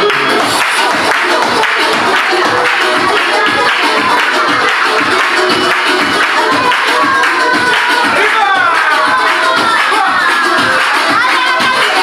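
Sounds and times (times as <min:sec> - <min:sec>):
hand claps: 0:00.0 - 0:12.0
loud dance music: 0:00.0 - 0:12.0.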